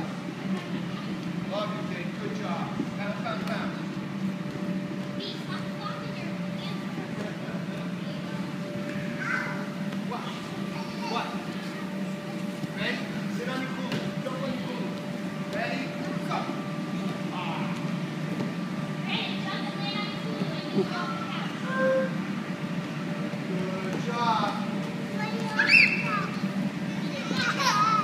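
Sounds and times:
air blower hum: 0.0s - 28.0s
small children's voices and calls: 8.0s - 11.7s, 25.0s - 28.0s.

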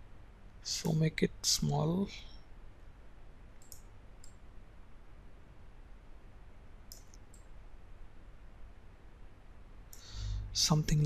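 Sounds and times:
faint low hum: 0.0s - 11.0s
computer mouse clicks: 3.6s - 4.4s, 6.9s - 7.6s.

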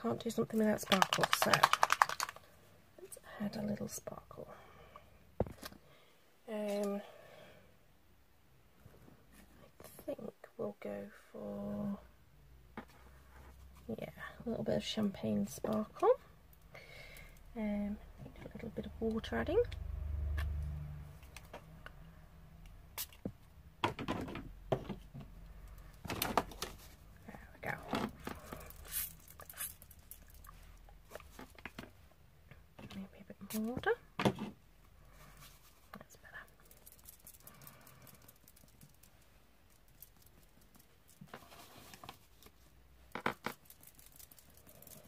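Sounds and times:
scratchy brushing on paper: 28.8s - 29.8s.

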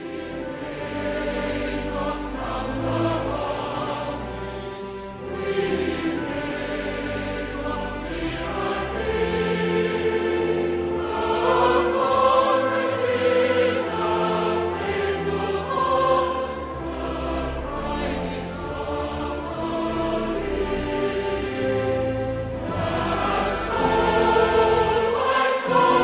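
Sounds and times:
choir singing long notes: 0.0s - 26.0s.

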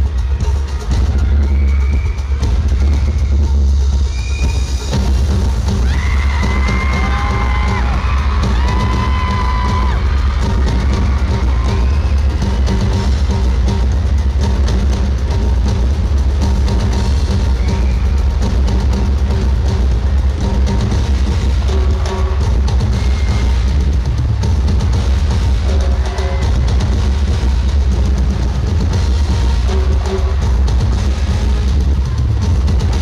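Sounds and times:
audience screaming: 0.0s - 33.0s
backing track with heavy bass: 0.0s - 33.0s
drum kit playing: 0.0s - 33.0s.

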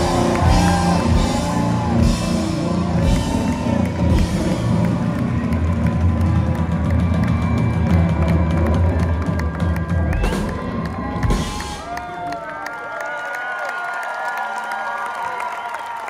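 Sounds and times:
live rock band: 0.0s - 12.1s
drum and cymbal hits: 0.0s - 12.2s
audience cheering and whooping: 0.0s - 16.0s.

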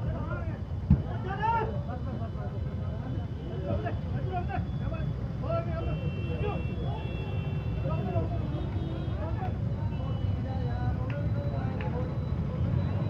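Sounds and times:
distant voices: 0.0s - 13.0s
street traffic rumble: 0.0s - 13.0s.

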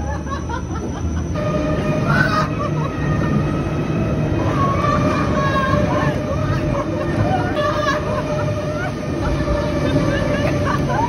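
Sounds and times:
fairground ride mechanical rumble: 0.0s - 11.0s
people's voices: 2.0s - 11.0s.

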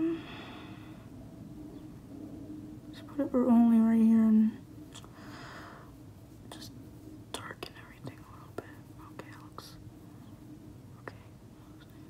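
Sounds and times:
steady low hum: 0.0s - 12.0s
breathy exhale through nose: 5.1s - 5.9s.

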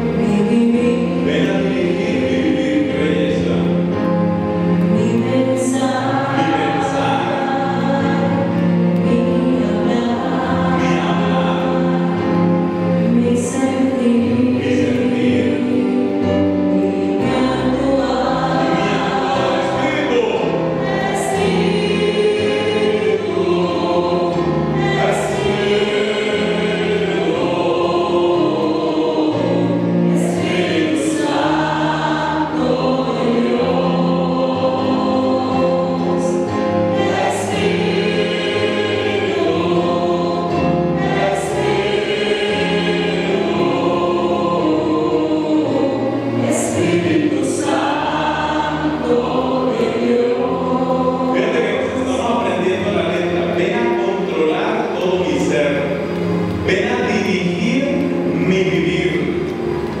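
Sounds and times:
congregation singing: 0.0s - 60.0s
electronic keyboard chords: 0.0s - 60.0s.

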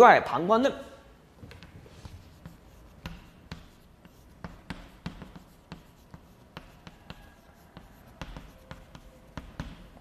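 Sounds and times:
chalk tapping on board: 1.5s - 10.0s
chalk scratching on blackboard: 1.6s - 10.0s.

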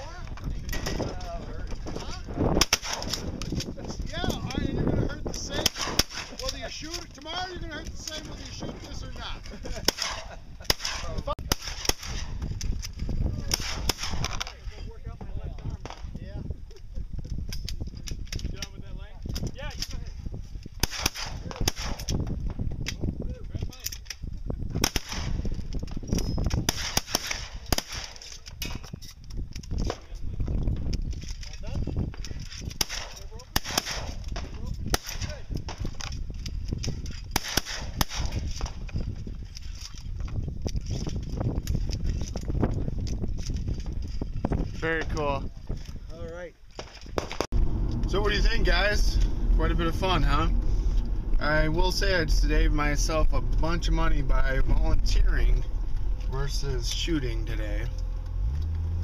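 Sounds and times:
shotgun shots: 2.6s - 3.4s, 5.6s - 6.5s, 9.8s - 12.4s, 13.4s - 14.5s, 20.8s - 22.2s, 24.8s - 25.5s, 26.6s - 28.3s, 32.8s - 36.1s, 37.3s - 38.8s, 46.8s - 47.5s.

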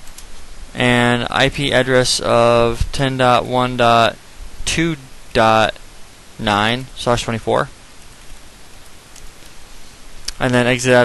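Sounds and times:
microphone hiss: 0.0s - 11.0s.

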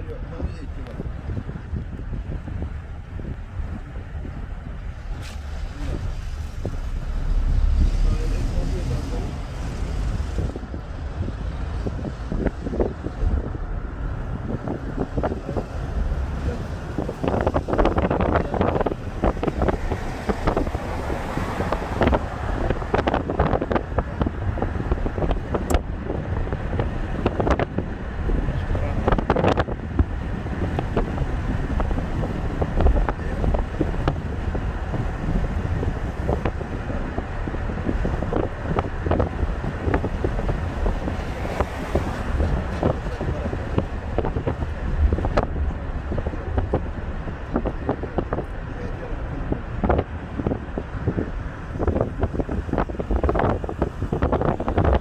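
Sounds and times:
moving car rumble: 0.0s - 55.0s
wind buffeting microphone: 0.0s - 55.0s.

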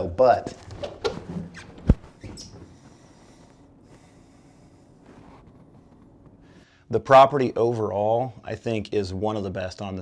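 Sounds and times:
rustling in a bathtub: 4.8s - 6.6s.

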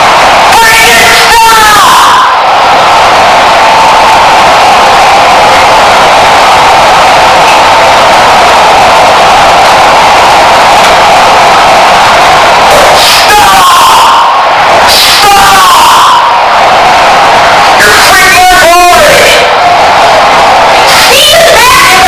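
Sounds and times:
harsh distorted noise: 0.0s - 22.0s.

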